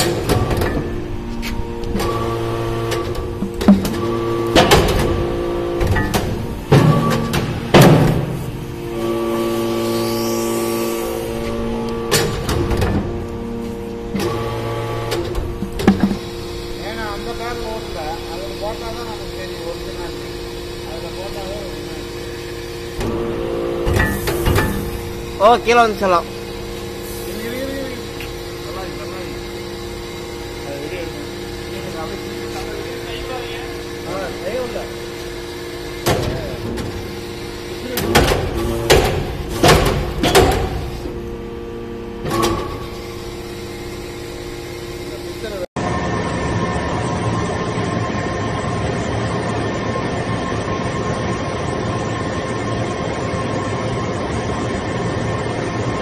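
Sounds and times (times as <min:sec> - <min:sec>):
hydraulic power unit humming: 0:00.0 - 0:56.0
heavy metallic clunks: 0:15.2 - 0:16.2.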